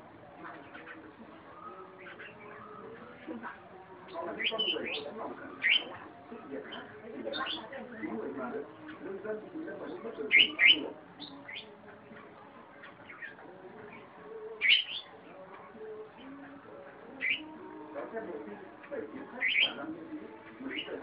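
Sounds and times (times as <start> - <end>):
bird singing whistled phrases: 5.6 - 5.9.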